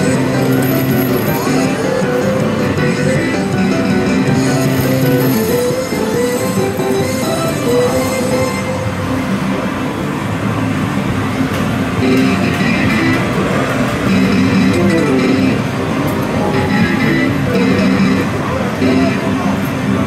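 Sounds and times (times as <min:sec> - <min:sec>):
slot machine music and jingles: 0:00.0 - 0:09.0, 0:12.0 - 0:19.4.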